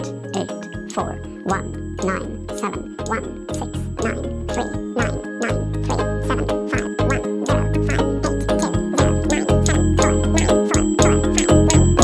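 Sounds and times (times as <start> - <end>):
background music with bass: 0.0 - 12.0
man reciting digits rapidly: 0.0 - 12.0.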